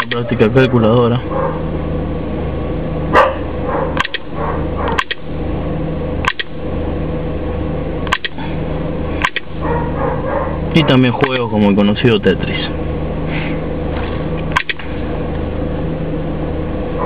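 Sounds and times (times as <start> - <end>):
electrical hum: 0.0 - 17.0
sharp clicks: 4.0 - 4.3, 4.9 - 5.2, 6.2 - 6.6, 8.0 - 8.4, 9.2 - 9.5, 11.2 - 11.4, 14.5 - 14.9.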